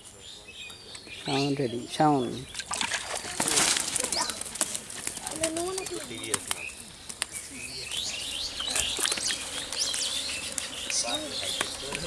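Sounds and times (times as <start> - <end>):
birds chirping: 0.0 - 12.0
fish flopping on sand: 2.6 - 6.7.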